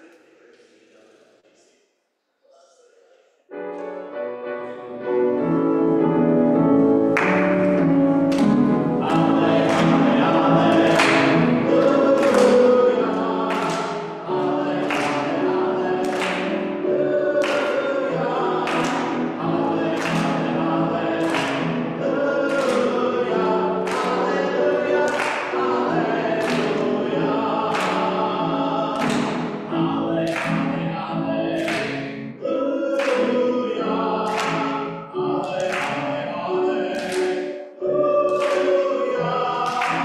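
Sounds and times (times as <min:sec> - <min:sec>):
congregation singing: 0:03.5 - 0:40.0.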